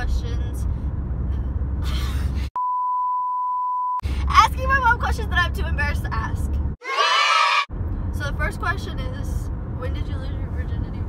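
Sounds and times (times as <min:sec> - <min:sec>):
steady test tone beep: 0:02.6 - 0:04.0.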